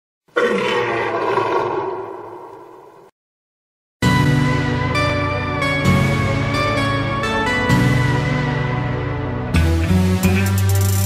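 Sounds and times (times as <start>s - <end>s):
lion roaring: 0.3s - 3.0s.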